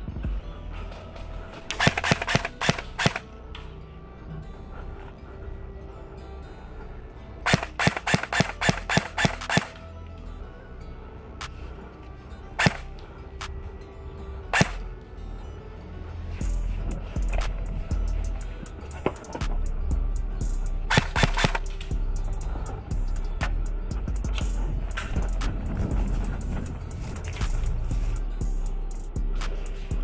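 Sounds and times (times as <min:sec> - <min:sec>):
airsoft gun shots: 0:01.7 - 0:03.2, 0:07.5 - 0:09.8, 0:12.6 - 0:12.8, 0:14.6 - 0:14.8, 0:20.9 - 0:21.6
music with heavy beat: 0:01.7 - 0:03.2, 0:07.5 - 0:09.8, 0:12.6 - 0:12.8, 0:14.6 - 0:14.8, 0:16.4 - 0:30.0.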